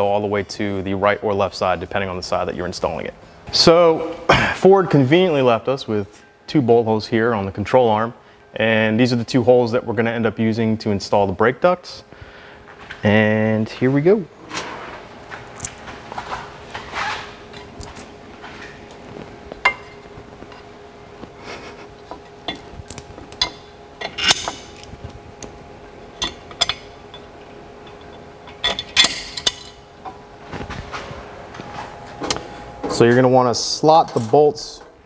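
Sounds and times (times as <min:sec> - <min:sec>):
faint steady hum: 0:00.0 - 0:35.0.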